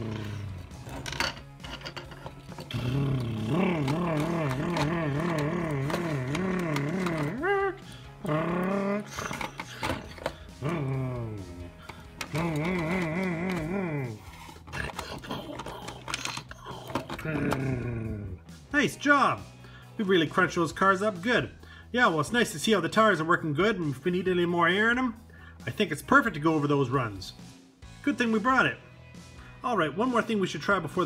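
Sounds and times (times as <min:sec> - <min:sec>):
man imitating truck engine: 0:02.7 - 0:09.3, 0:10.5 - 0:14.2, 0:17.2 - 0:18.4.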